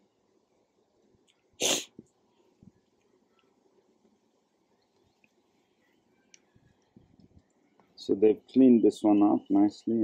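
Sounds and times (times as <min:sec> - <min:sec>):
person sneezing: 0:01.6 - 0:02.0.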